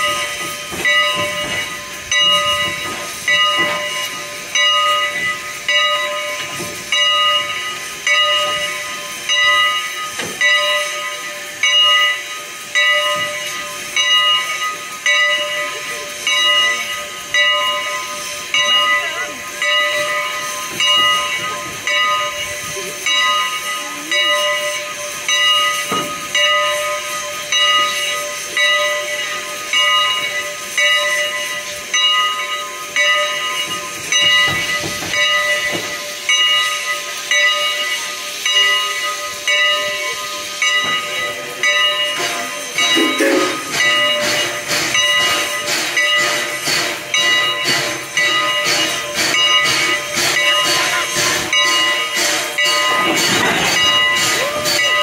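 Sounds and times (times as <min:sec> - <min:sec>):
steam locomotive hissing: 0:00.0 - 0:55.0.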